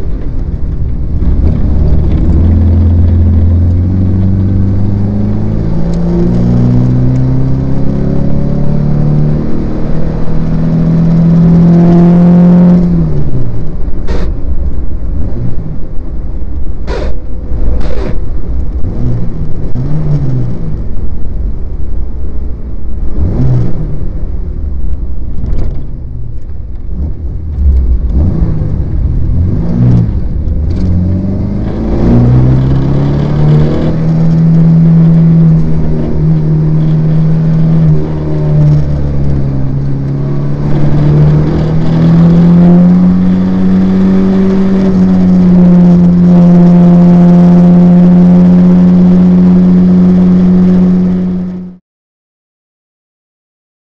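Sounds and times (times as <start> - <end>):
car engine revving: 0.0 - 51.8.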